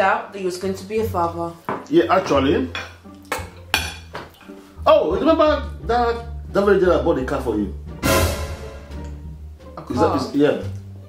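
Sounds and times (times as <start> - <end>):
spoons clinking on plates: 2.7 - 4.6.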